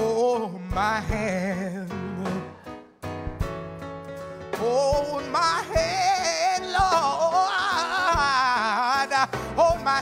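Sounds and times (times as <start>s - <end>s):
man singing gospel: 0.0s - 2.6s, 4.5s - 10.0s
instrumental accompaniment: 0.0s - 10.0s.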